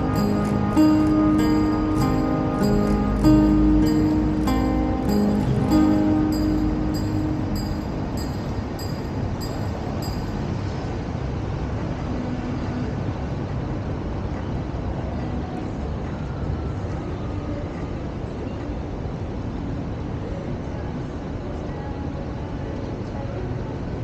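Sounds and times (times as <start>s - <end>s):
low rumble of road traffic: 0.0s - 24.0s.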